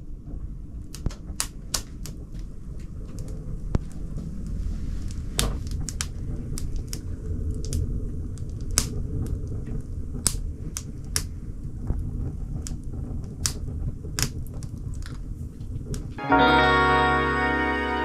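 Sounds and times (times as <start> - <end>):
wood fire crackling: 0.0 - 16.2.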